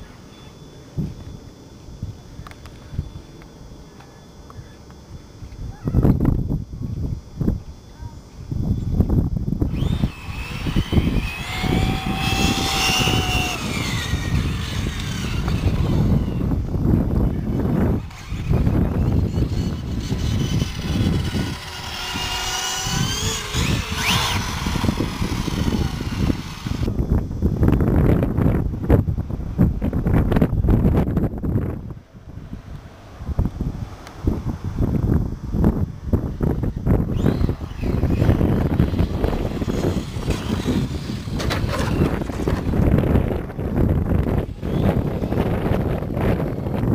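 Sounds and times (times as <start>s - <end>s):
wind rumble on microphone: 5.0s - 46.9s
toy car motors whining: 9.6s - 26.9s, 37.0s - 43.4s, 44.2s - 46.9s.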